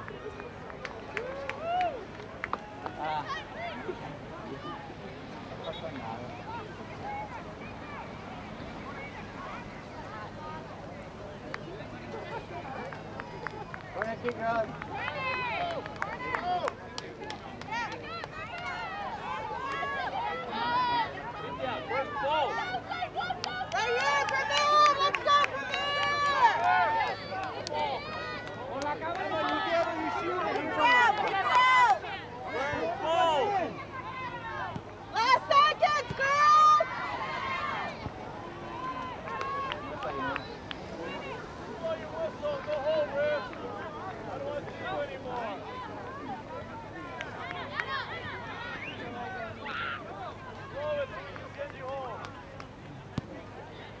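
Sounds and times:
people shouting and calling out: 0.0 - 54.0
people shouting: 29.5 - 51.1.

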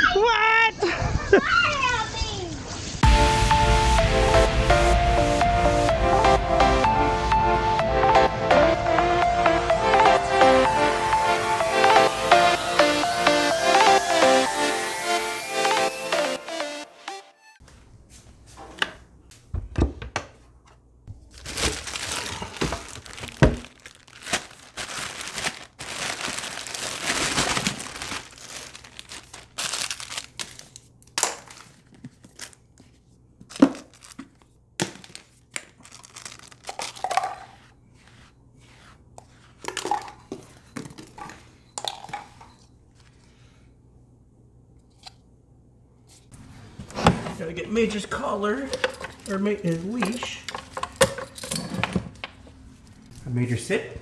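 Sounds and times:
plastic bag crinkling: 21.2 - 32.6, 33.5 - 37.7, 48.6 - 51.0
leash hardware jangling: 50.1 - 51.9.

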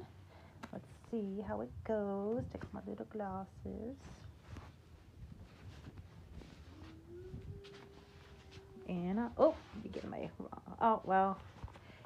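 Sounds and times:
faint steady hum: 0.0 - 12.0
fabric rustling: 1.9 - 12.0.

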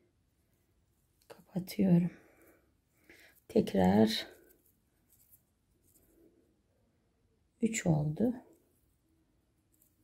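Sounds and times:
crochet hook scratching thread: 3.3 - 6.2.

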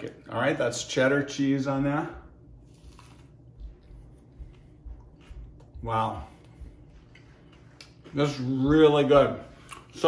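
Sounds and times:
person chewing: 2.4 - 8.1, 9.5 - 10.0.

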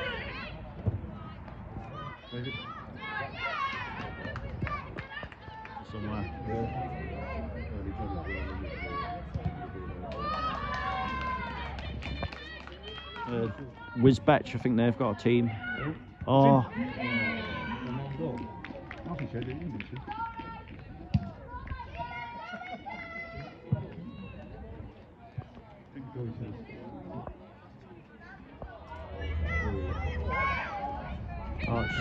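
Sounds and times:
people shouting: 29.1 - 32.0.

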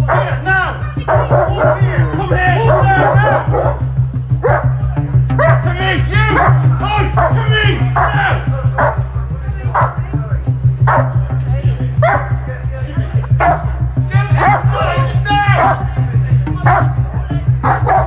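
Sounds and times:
dog barking: 0.0 - 0.4, 1.0 - 1.9, 2.6 - 4.8, 5.4 - 5.7, 6.3 - 7.4, 8.0 - 8.2, 8.8 - 9.1, 9.7 - 10.0, 10.8 - 11.2, 12.0 - 12.4, 13.3 - 13.8, 14.4 - 14.7, 15.6 - 15.8, 16.7 - 17.0, 17.6 - 18.0
background music with pulsing beat: 0.0 - 18.0.

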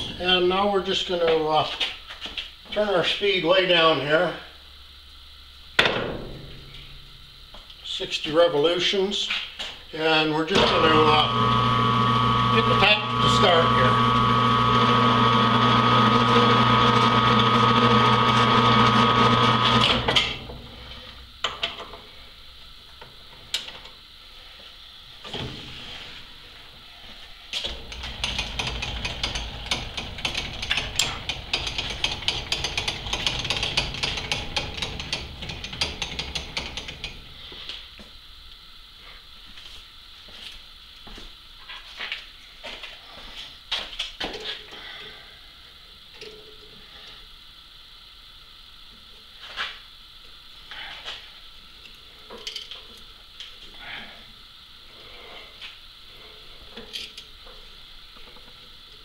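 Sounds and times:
lathe motor hum: 10.6 - 21.2, 27.7 - 37.2.

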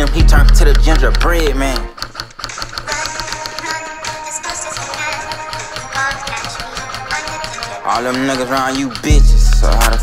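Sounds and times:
rap beat with bass: 0.0 - 1.9, 2.9 - 10.0
rap vocals: 0.0 - 1.9, 2.9 - 10.0.

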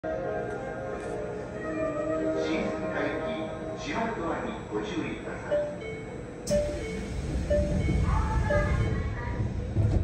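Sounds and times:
train rumbling: 5.4 - 10.0.

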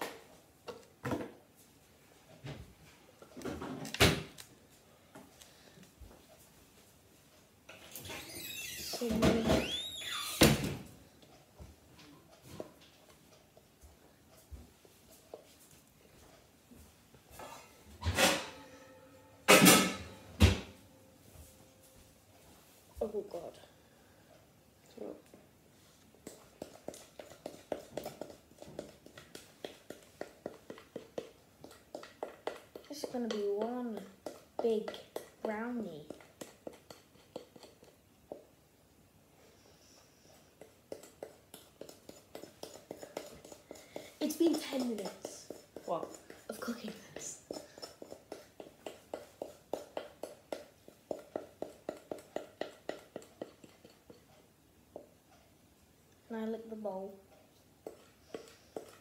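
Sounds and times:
utensil scraping mixing bowl: 26.2 - 38.0, 40.6 - 54.3, 57.8 - 59.0.

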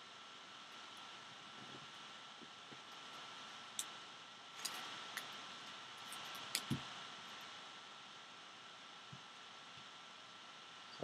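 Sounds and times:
faint steady hiss: 0.0 - 11.0
sharp clicks of cards: 6.1 - 6.9.

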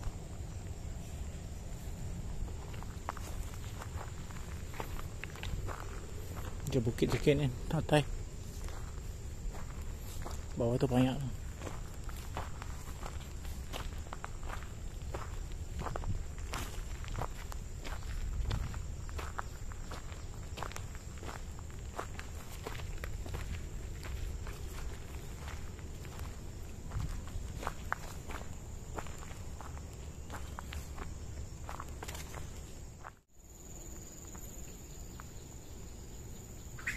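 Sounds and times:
footsteps crunching dry leaves: 0.8 - 33.2.

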